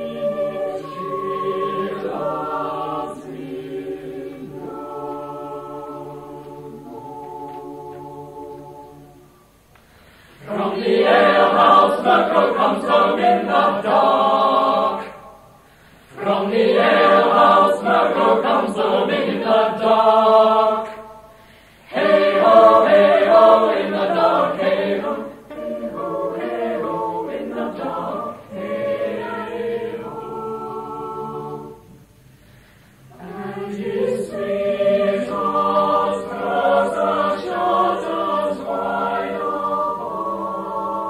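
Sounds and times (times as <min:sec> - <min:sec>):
choir singing a cappella: 0:00.0 - 0:41.0.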